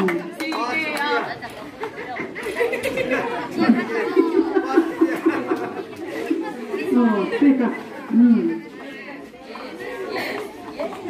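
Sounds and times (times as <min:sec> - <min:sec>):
children chattering and calling out: 0:00.2 - 0:11.0.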